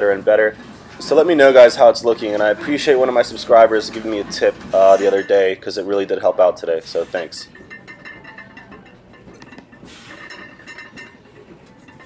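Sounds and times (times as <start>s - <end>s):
quiet electronic music: 0.0s - 12.0s.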